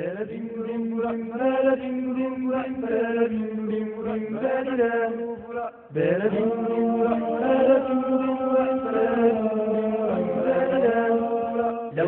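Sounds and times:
person singing chant-like notes: 0.0 - 12.0.

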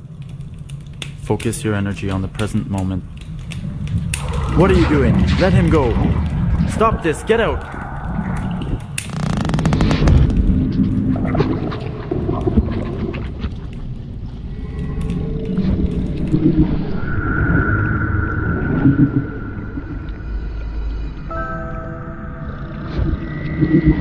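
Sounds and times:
dense low rumble: 0.0 - 21.3
steady high tone: 21.2 - 23.6.

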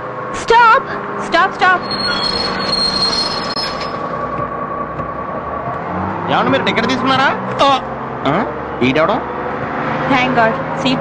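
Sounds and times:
bus engine rumbling: 0.0 - 11.0.

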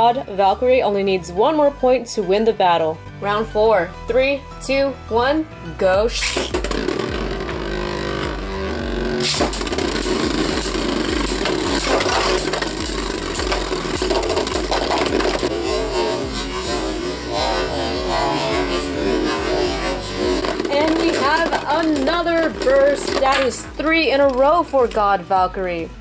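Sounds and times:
background music with beat: 6.0 - 26.0
spinning top bursting apart: 6.2 - 24.4.

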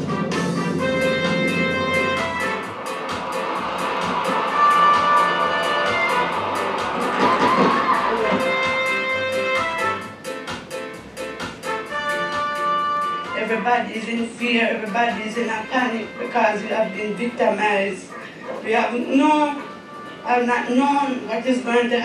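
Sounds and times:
band music over speakers: 0.0 - 20.8
crowd cheering: 2.6 - 9.6.

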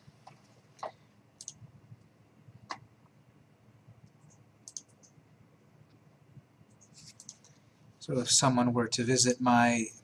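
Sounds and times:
computer mouse clicking: 0.2 - 2.9, 4.0 - 5.2, 6.7 - 7.6.

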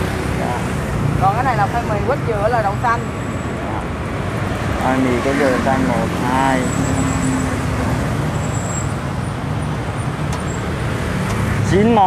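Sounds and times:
motorbike engines passing: 0.0 - 12.0
road traffic rumble: 0.0 - 12.0.

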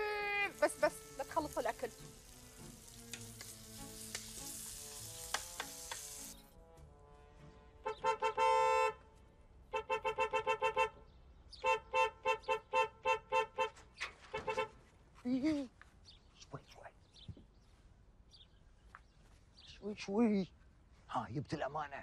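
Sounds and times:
food sizzling in a pan: 0.0 - 6.4
background music: 0.0 - 9.1
car horn honking: 7.8 - 9.1, 9.7 - 14.8.

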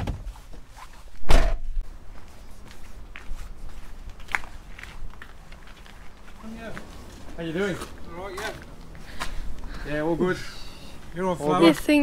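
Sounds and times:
van door slamming shut: 1.2 - 1.6
footsteps on tarmac: 1.8 - 9.9.

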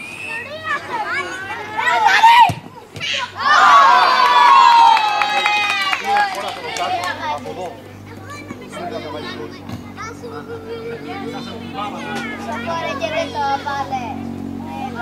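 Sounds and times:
children's voices and chatter: 0.0 - 15.0
children yelling together: 0.3 - 6.3.

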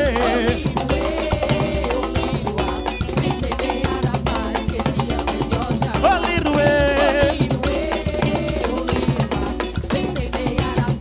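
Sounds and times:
guitar: 0.0 - 11.0
percussion band drumming: 0.0 - 11.0.

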